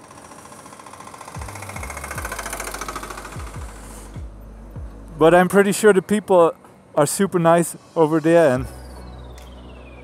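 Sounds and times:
heavy diesel engine knocking: 0.0s - 4.3s
wind and road noise: 0.0s - 10.0s.

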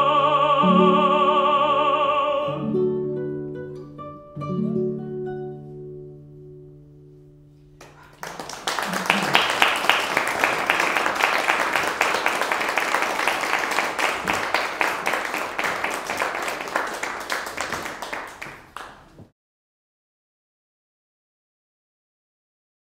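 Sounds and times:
audience applauding: 7.8s - 19.2s.

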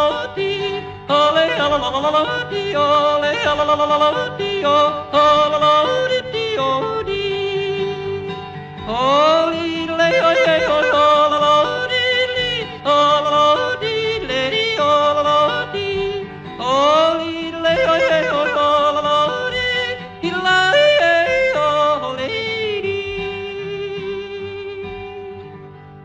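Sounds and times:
man yodeling: 0.0s - 25.4s
instrumental backing music: 0.0s - 26.0s.

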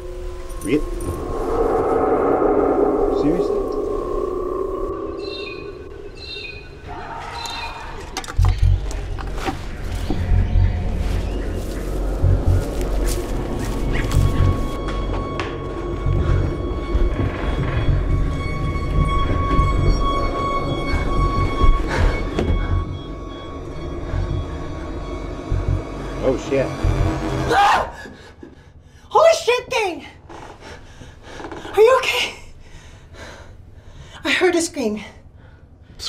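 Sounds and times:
long held high tones: 0.0s - 8.0s, 10.9s - 28.1s
pulsing deep bass: 8.4s - 27.6s
sharp musical hits: 13.8s - 27.7s.

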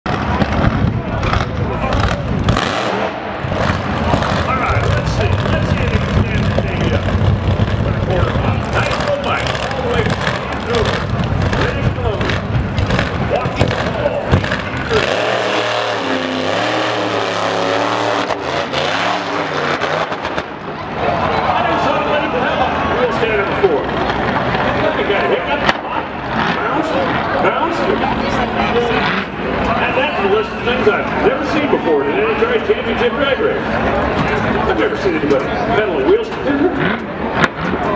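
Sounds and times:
car engine revving: 0.1s - 37.9s.

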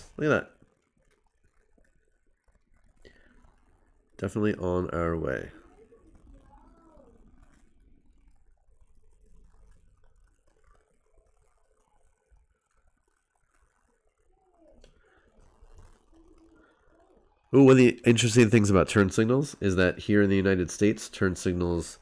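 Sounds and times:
faint soft sounds: 0.0s - 22.0s.

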